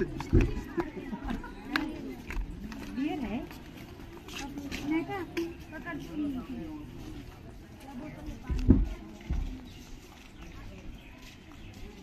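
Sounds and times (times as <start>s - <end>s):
footsteps on stone paving: 0.0s - 12.0s
people talking indistinctly: 0.0s - 12.0s.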